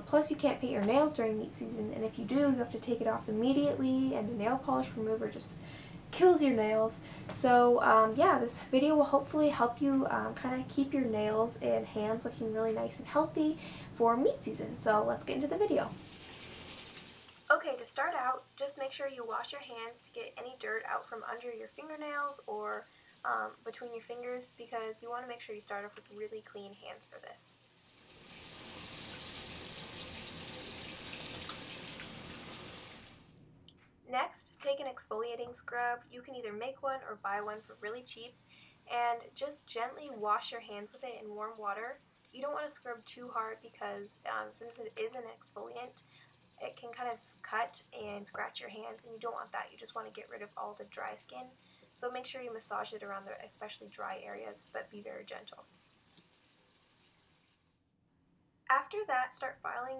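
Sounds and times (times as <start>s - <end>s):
water running from faucet: 6.3s - 33.3s, 37.2s - 57.7s
hands washing under water: 16.0s - 17.5s, 28.4s - 33.2s.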